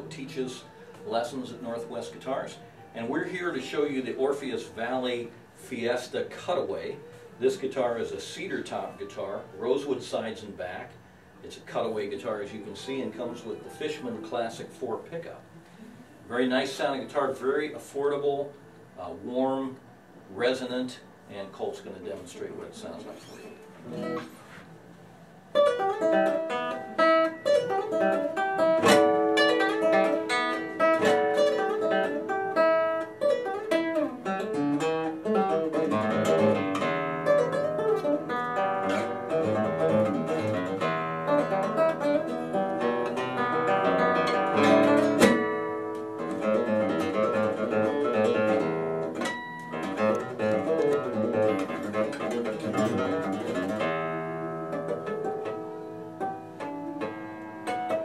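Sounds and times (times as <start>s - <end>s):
fingerpicked classical guitar: 0.0s - 18.6s, 21.8s - 58.0s.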